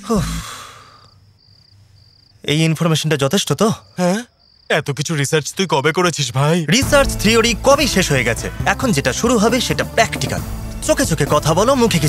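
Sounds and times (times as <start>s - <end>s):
cricket trill: 0.2s - 6.2s
men talking: 2.4s - 12.0s.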